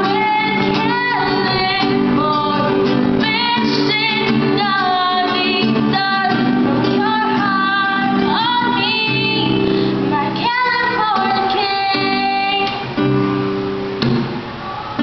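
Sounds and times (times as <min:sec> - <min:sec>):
girls singing a pop ballad: 0:00.0 - 0:12.8
acoustic guitar: 0:00.0 - 0:15.0.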